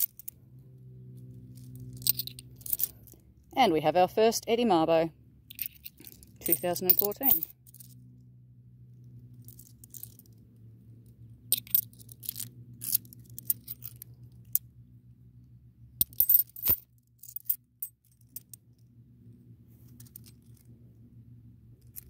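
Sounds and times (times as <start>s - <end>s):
faint low hum: 0.0s - 22.0s
coins clinking: 1.6s - 3.2s, 5.5s - 7.9s, 11.5s - 14.6s, 16.0s - 18.6s.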